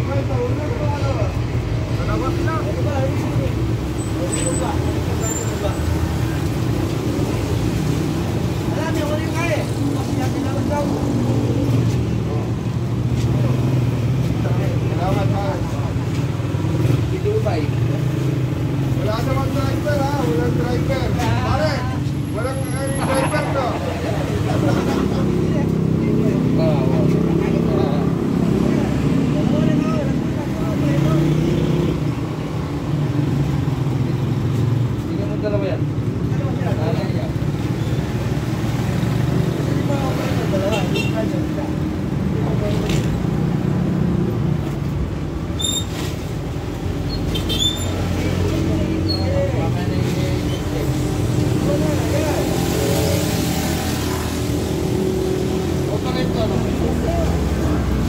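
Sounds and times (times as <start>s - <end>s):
people talking: 0.0s - 6.6s, 8.6s - 16.2s, 18.9s - 31.6s, 35.0s - 37.5s, 39.6s - 43.2s, 48.0s - 55.0s, 55.7s - 58.0s.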